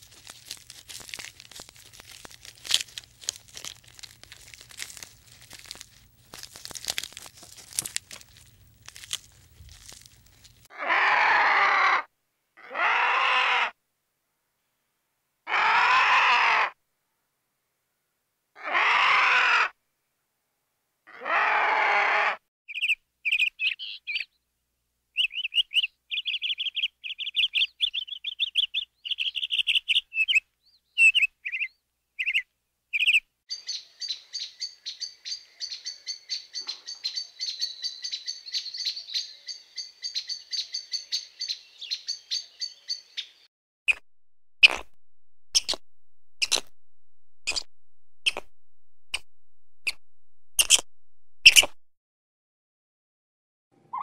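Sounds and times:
high bird chirps: 0:22.7 - 0:24.3, 0:25.2 - 0:32.4, 0:33.0 - 0:44.0, 0:45.5 - 0:45.8, 0:47.3 - 0:51.8
hummingbird rapid twittering: 0:45.5 - 0:45.8, 0:47.4 - 0:48.5, 0:50.6 - 0:50.8.

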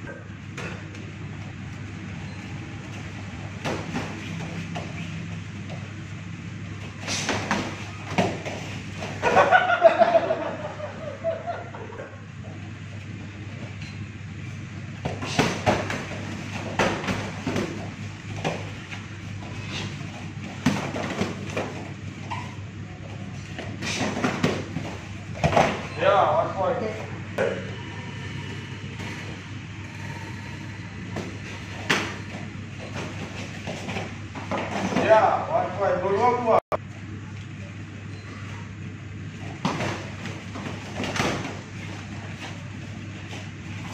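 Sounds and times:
wall fans humming: 0:00.0 - 0:43.9
low hum: 0:15.8 - 0:35.6.

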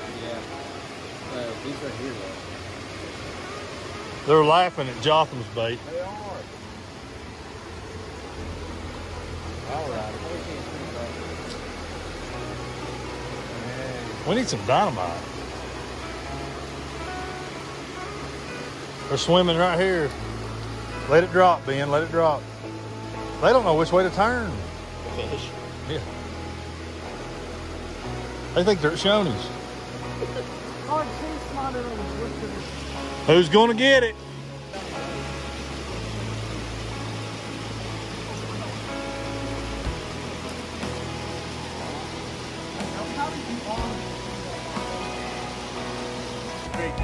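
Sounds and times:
creek rushing over rocks: 0:00.0 - 0:47.0.

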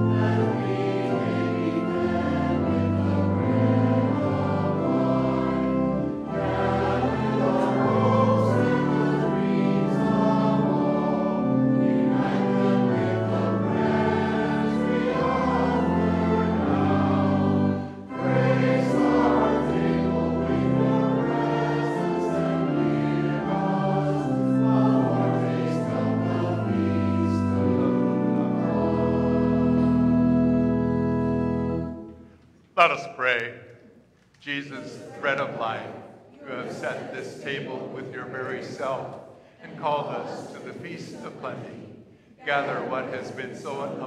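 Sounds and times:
congregation singing a hymn: 0:00.0 - 0:33.6, 0:34.4 - 0:44.0
pipe organ chords: 0:00.0 - 0:33.8.

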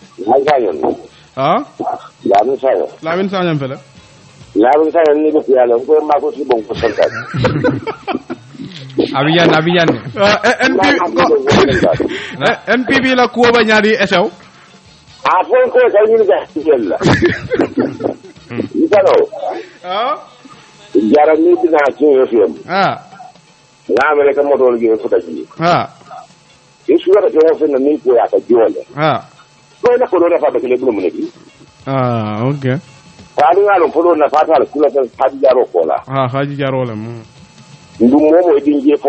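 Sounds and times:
distorted buzzy voice: 0:00.0 - 0:03.9, 0:04.5 - 0:14.4, 0:15.2 - 0:39.0.

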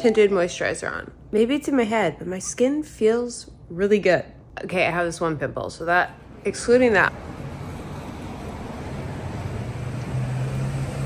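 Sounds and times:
road noise: 0:06.2 - 0:11.0
car engine hum: 0:07.1 - 0:11.0.

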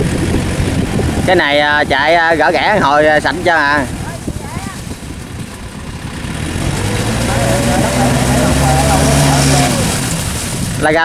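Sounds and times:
tractor diesel engine under load: 0:00.0 - 0:11.0.

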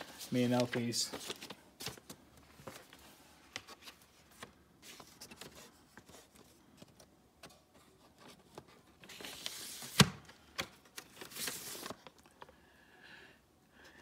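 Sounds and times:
paper and card rustling: 0:00.0 - 0:12.5.

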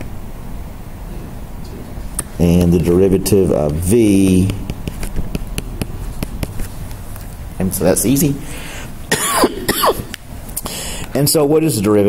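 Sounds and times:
man coughing: 0:09.1 - 0:10.1.

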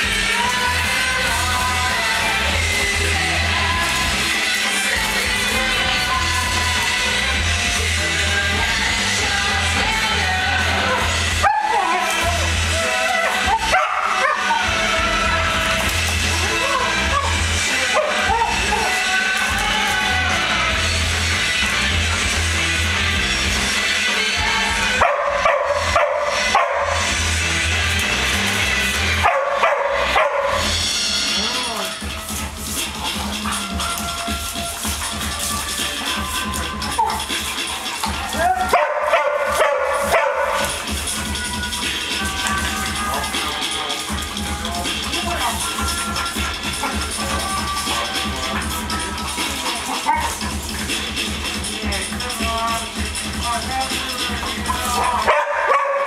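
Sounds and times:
background music: 0:00.0 - 0:56.0
dogs barking and yelping: 0:10.8 - 0:14.8, 0:16.6 - 0:19.8, 0:24.8 - 0:27.4, 0:28.0 - 0:30.9, 0:32.9 - 0:42.1, 0:49.4 - 0:50.6, 0:54.8 - 0:56.0.

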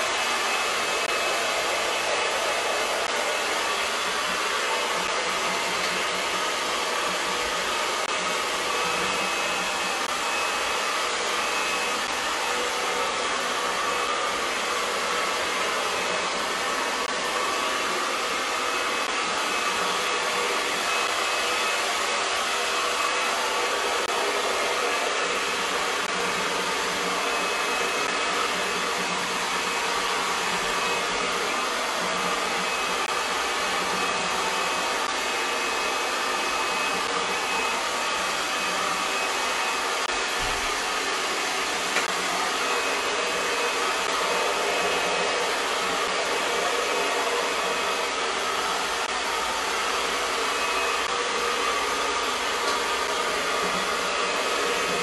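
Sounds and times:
blow dryer running: 0:00.0 - 0:55.0.

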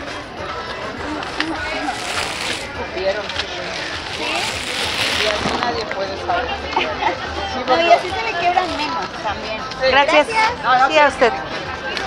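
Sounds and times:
chatter of voices: 0:00.0 - 0:12.0
plastic bag crinkling: 0:01.8 - 0:05.8.

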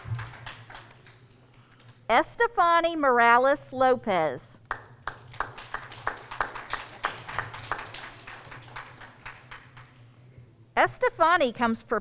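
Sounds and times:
audience applauding: 0:00.0 - 0:01.4, 0:04.7 - 0:10.0.

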